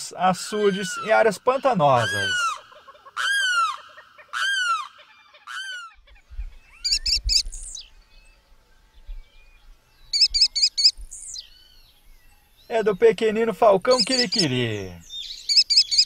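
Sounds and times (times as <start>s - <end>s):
bird wailing calls: 0.0s - 7.9s, 10.1s - 12.5s, 13.8s - 16.0s
falcon rapid high calls: 0.4s - 7.8s, 15.4s - 16.0s.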